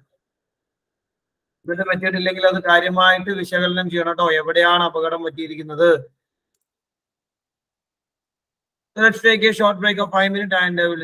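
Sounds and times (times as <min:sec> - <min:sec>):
man's voice: 0:01.7 - 0:06.1, 0:09.0 - 0:11.0.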